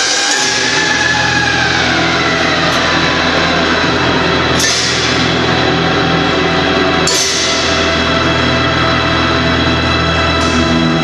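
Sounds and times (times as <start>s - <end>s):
loud rushing drone: 0.0s - 11.0s
tone sliding downward: 0.0s - 11.0s.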